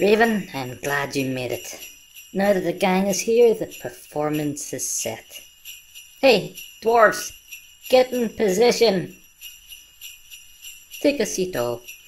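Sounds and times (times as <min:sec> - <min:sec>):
small bells jingling: 0:00.0 - 0:12.0.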